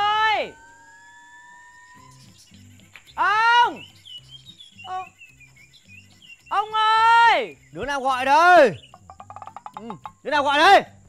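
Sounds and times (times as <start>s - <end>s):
faint bird chirps: 0.0s - 10.3s.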